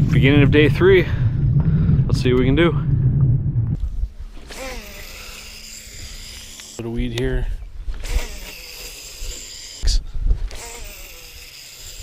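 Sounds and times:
fishing reel whirring: 4.4s - 7.0s, 8.0s - 12.0s.

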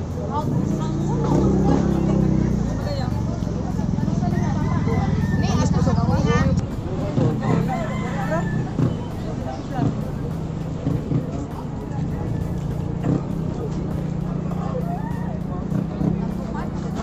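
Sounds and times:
engine hum: 0.0s - 17.0s
people talking: 0.0s - 17.0s
rooster crowing: 4.2s - 5.8s, 7.4s - 9.0s.

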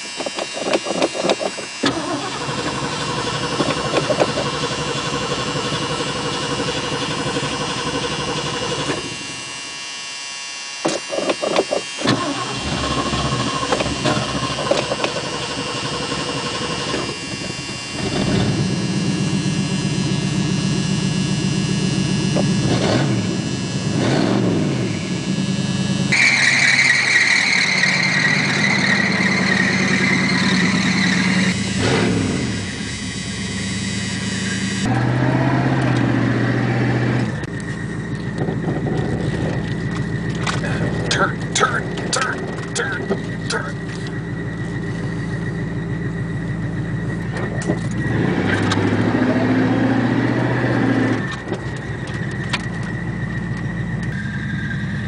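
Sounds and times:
car engine revving: 0.0s - 9.9s, 10.9s - 55.0s.

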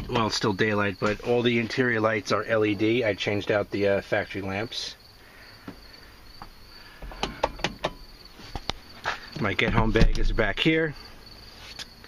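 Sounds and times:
high-pitched insect trill: 4.5s - 9.4s, 10.8s - 12.0s
sharp clicks and knocks: 6.4s - 8.8s.

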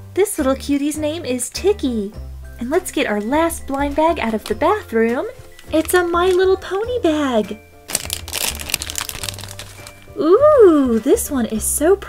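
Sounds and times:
background music: 0.0s - 12.0s
plastic packet crinkling: 3.5s - 6.8s, 7.9s - 10.2s.

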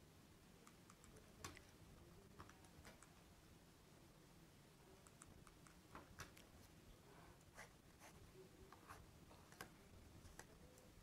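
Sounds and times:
faint irregular clicks: 0.6s - 1.7s, 2.3s - 3.2s, 5.0s - 6.6s.

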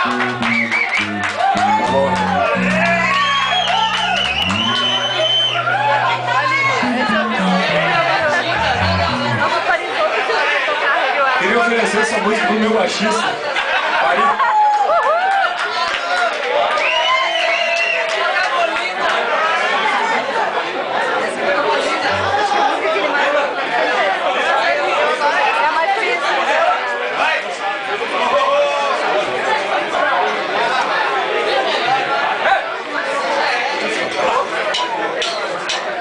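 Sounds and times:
bass guitar low notes: 0.0s - 9.6s, 22.1s - 22.6s
crowd chatter: 0.0s - 14.7s, 19.0s - 36.0s.

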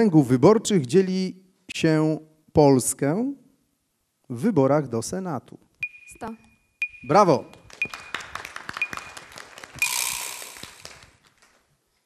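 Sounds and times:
audience clapping: 7.1s - 11.9s.

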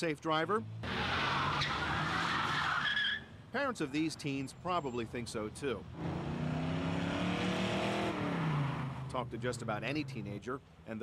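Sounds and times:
cars driving past: 5.8s - 10.4s.

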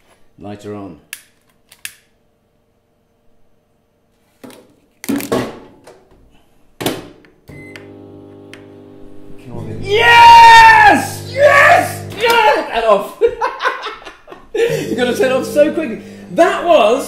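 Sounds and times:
microwave humming: 7.4s - 13.0s, 14.6s - 17.0s
microwave beep: 7.5s - 8.8s.

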